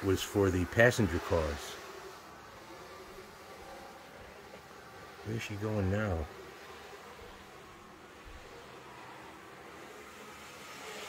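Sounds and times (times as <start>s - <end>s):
model train motor whir: 0.0s - 11.0s.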